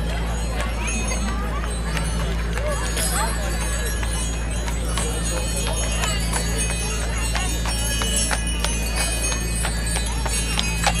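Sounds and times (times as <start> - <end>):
harness bells jingling: 0.0 - 11.0
hooves clopping on pavement: 0.0 - 11.0.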